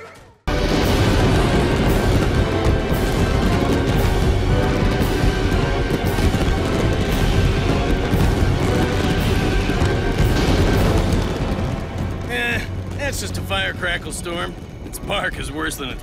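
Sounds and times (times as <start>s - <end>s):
music: 0.0s - 16.0s
cartoon fireworks bursting and crackling: 0.5s - 16.0s
low rumble: 0.5s - 16.0s.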